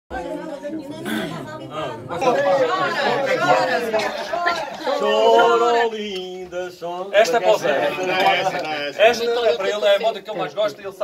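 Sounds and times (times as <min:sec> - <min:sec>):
men chattering: 0:00.3 - 0:11.0.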